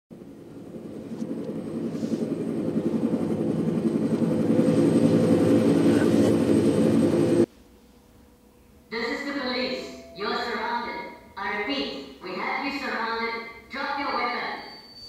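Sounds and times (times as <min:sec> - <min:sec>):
helicopter fluttering rumble: 0:00.1 - 0:07.5.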